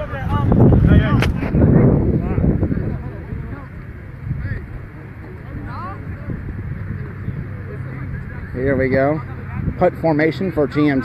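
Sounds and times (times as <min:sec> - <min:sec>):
low rumbling buffeting on microphone: 0:00.0 - 0:11.0
voices calling: 0:00.0 - 0:11.0
sharp crack: 0:01.1 - 0:01.6.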